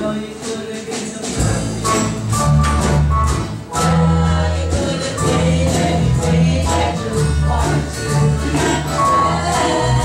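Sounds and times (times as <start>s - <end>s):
acoustic guitars strummed: 0.0s - 10.0s
voices singing along: 3.8s - 10.0s.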